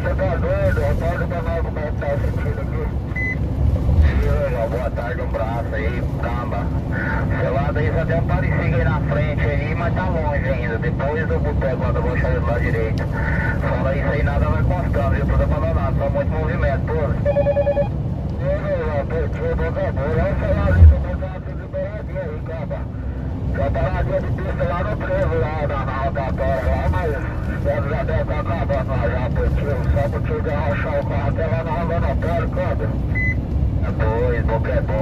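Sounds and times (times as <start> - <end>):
truck cab rumble: 0.0 - 35.0
voices talking: 0.0 - 35.0
short beep: 3.2 - 3.4, 17.2 - 17.9.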